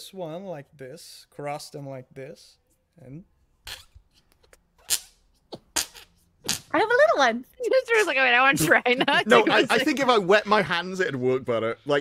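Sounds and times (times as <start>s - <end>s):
hand-fart noises: 4.8s - 6.7s.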